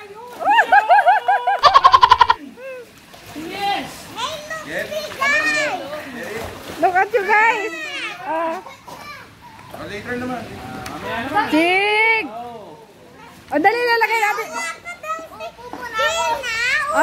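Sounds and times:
excited voices: 0.0s - 6.2s
child splashing into pool: 0.0s - 9.8s
rhythmic calling voices: 1.5s - 3.0s.

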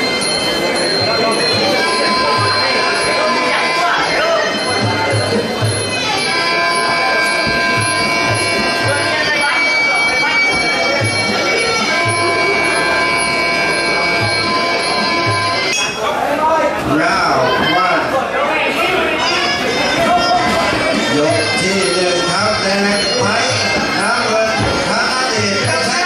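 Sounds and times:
drum beats: 0.0s - 18.1s, 19.0s - 26.0s
crowd voices: 0.0s - 26.0s
reed oboe playing long notes: 6.2s - 15.8s.

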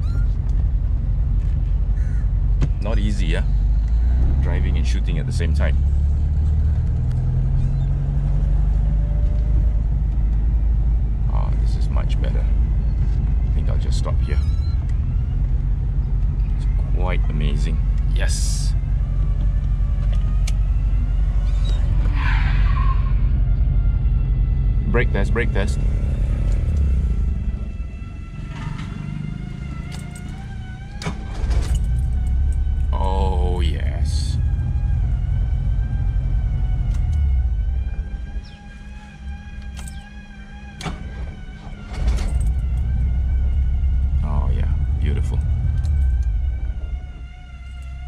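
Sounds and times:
car engine and road rumble: 0.0s - 48.0s.

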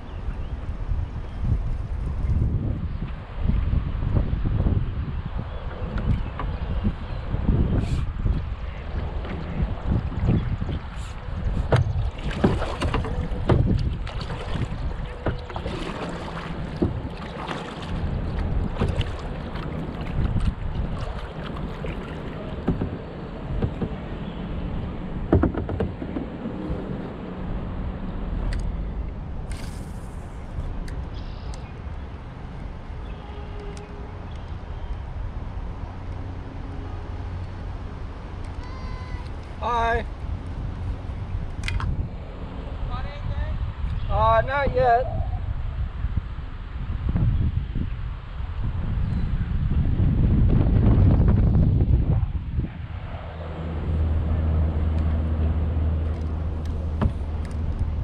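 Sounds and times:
wind rumble on microphone: 0.0s - 58.0s
water splashing and lapping: 7.8s - 42.8s, 53.0s - 58.0s
short knocks: 25.3s - 26.5s.

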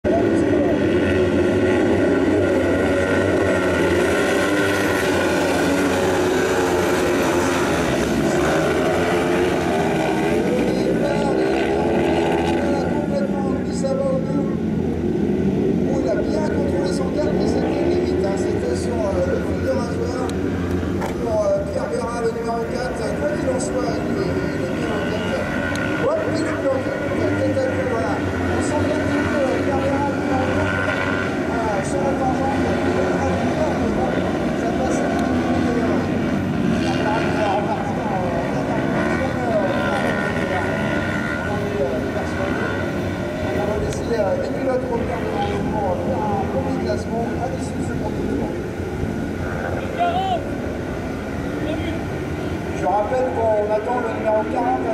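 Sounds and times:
racing buggy engines revving: 0.0s - 54.9s.

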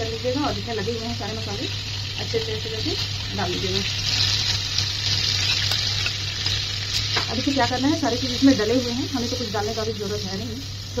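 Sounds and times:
spices sizzling in oil: 0.0s - 11.0s.

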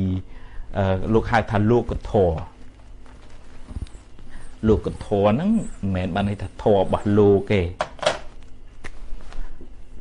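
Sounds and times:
man preaching: 0.0s - 2.6s, 4.6s - 7.8s.

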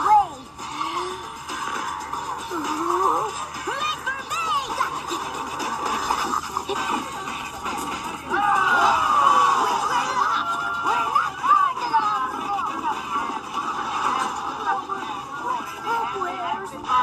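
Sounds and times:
animated film music: 0.0s - 17.0s.

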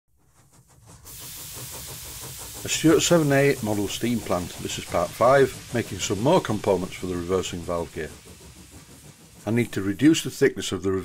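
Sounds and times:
steam hissing: 0.2s - 11.0s
faint rapid ticking: 0.3s - 10.9s.

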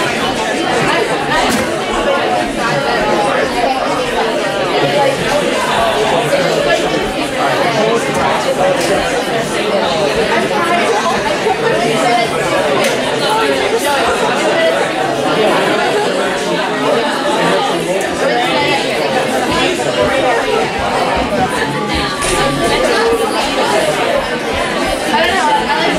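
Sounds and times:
babble of overlapping voices: 0.0s - 25.9s.

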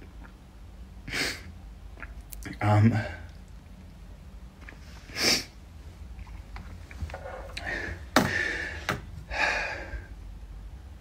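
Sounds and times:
man sniffing: 1.1s - 1.5s, 5.0s - 5.6s.

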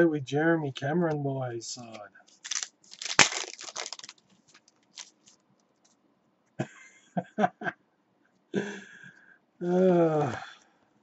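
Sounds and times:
foil wrapper ripping: 2.4s - 5.3s
foil wrapper crackling: 2.4s - 5.4s.

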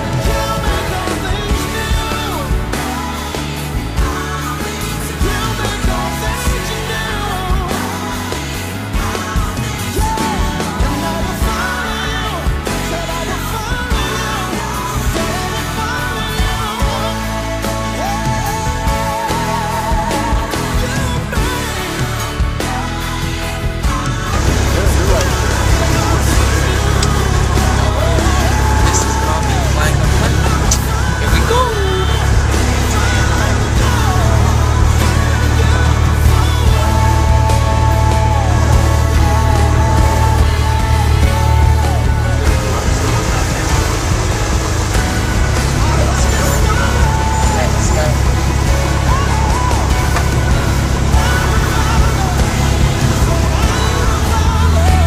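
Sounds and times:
music: 0.0s - 55.0s
faint voice: 24.3s - 37.2s
airplane engine drone: 24.4s - 54.8s.

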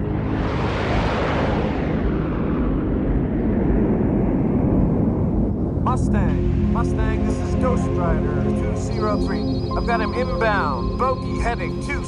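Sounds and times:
deep rumble: 0.0s - 12.0s
fighter jet engine roar: 0.0s - 12.0s.

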